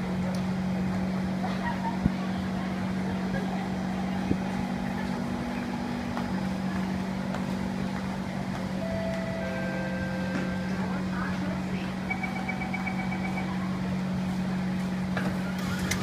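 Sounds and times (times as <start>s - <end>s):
faint voices of commuters: 0.0s - 16.0s.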